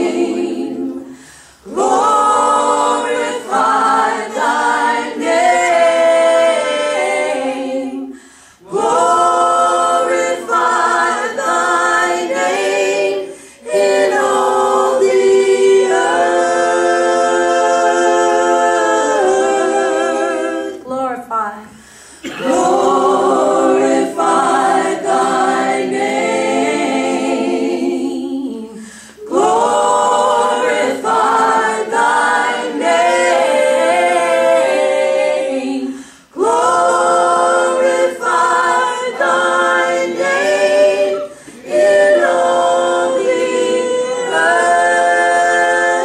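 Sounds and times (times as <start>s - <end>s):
women singing in harmony: 0.0s - 21.2s, 22.2s - 46.0s.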